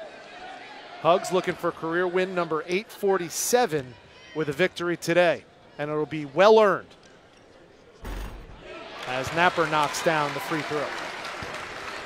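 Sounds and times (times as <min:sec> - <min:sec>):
arena crowd cheering: 0:00.0 - 0:04.8, 0:08.0 - 0:12.0.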